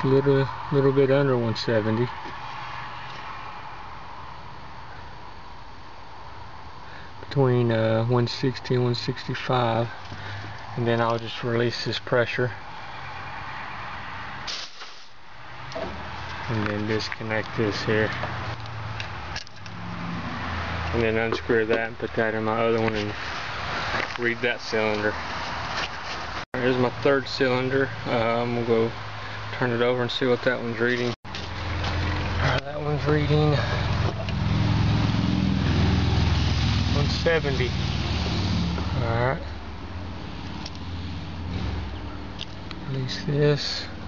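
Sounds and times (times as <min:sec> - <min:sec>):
low hum and hiss: 0:00.0 - 0:13.2.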